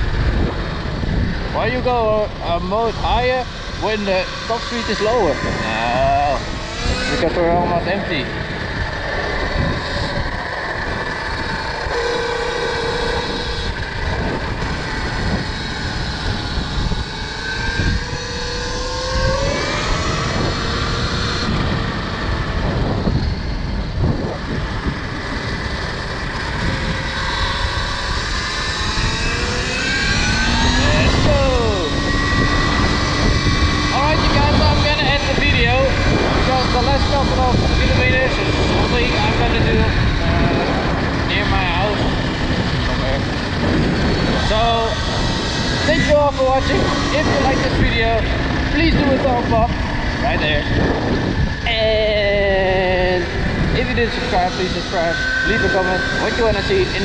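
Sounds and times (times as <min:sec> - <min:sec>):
electric motor whine: 0:00.0 - 0:57.0
wind rushing over microphone: 0:00.0 - 0:57.0.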